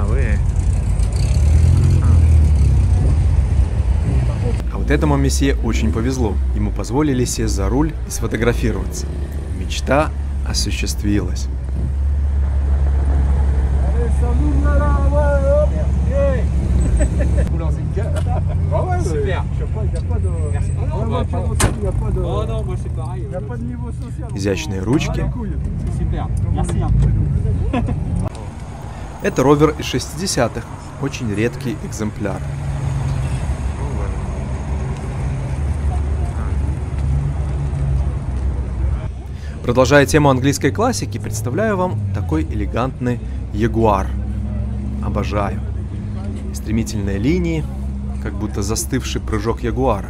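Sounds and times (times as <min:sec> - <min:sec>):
car engine idling: 0:00.0 - 0:26.9, 0:27.6 - 0:35.0, 0:38.0 - 0:50.0
onlookers chattering: 0:12.8 - 0:50.0.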